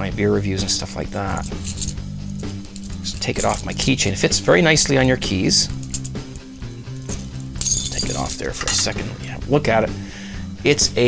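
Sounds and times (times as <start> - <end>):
keys clinking on split ring: 1.2 - 4.2, 5.7 - 9.2
keys jingling: 1.2 - 4.2, 5.7 - 9.2.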